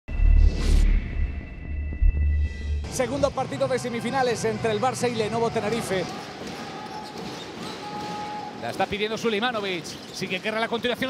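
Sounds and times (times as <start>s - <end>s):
shoe squeaks: 6.8s - 10.9s.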